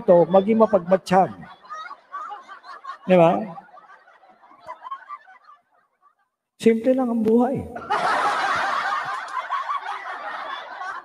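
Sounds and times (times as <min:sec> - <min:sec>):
crowd laughing: 0:00.0 - 0:11.0.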